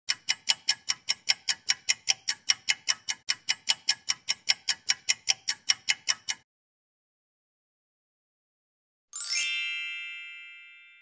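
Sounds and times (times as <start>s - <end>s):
clock ticking fast: 0.1s - 6.4s.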